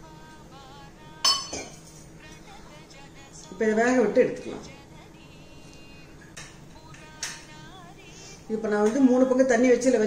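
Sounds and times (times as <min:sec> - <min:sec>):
faint background music: 0:00.0 - 0:10.0
metal utensil clinking: 0:01.3 - 0:02.1.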